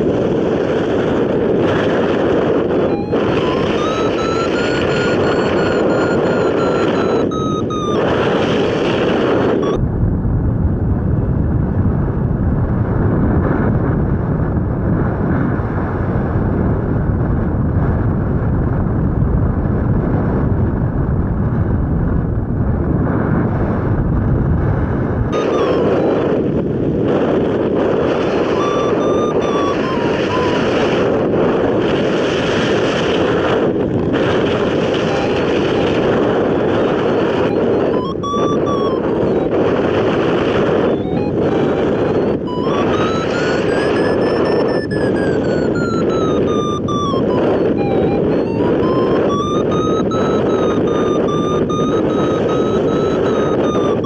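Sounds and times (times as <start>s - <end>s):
wind noise on microphone: 0.0s - 54.0s
thin whistling tone: 3.0s - 8.0s.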